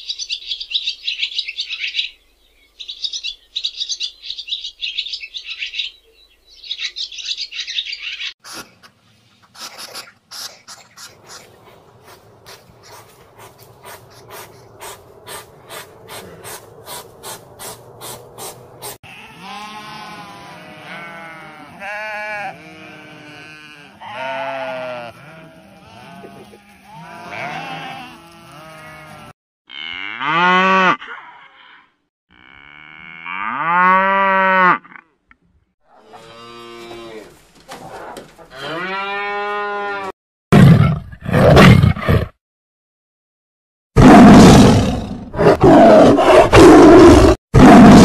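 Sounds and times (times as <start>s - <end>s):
hedgehog snuffling: 9.4s - 19.0s
cattle mooing: 19.0s - 31.1s, 38.5s - 40.1s
tiger roaring: 44.0s - 48.0s.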